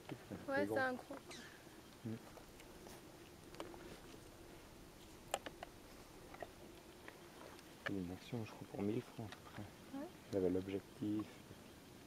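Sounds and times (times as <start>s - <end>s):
faint insect buzz: 0.0s - 12.0s.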